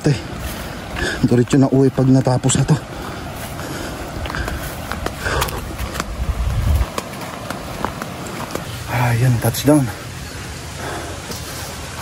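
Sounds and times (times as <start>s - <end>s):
grass and leaves brushing: 0.1s - 10.4s
footsteps on dirt path: 0.2s - 9.1s.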